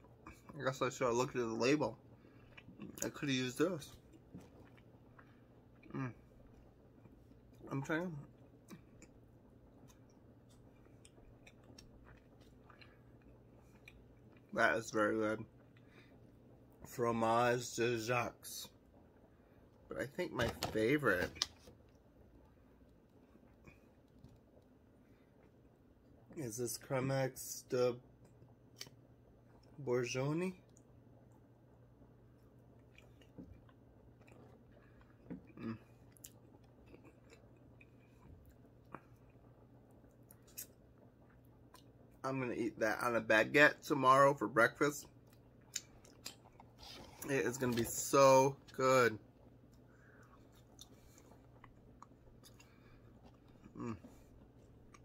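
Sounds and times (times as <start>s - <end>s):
person chewing with closed mouth: 2.1s - 3.1s, 3.9s - 7.6s, 8.2s - 14.5s, 32.2s - 42.2s, 45.1s - 47.9s, 49.4s - 55.0s.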